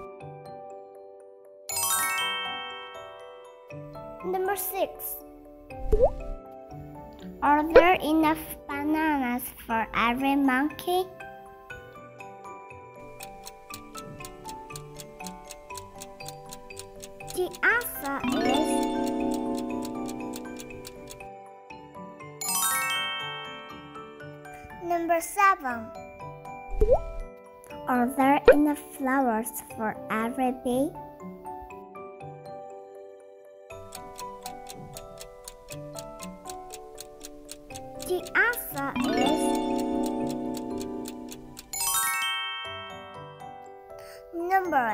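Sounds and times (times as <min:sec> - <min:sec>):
cheerful background music: 0:00.0 - 0:44.9
clock-like ticking: 0:13.0 - 0:21.3, 0:33.7 - 0:42.1.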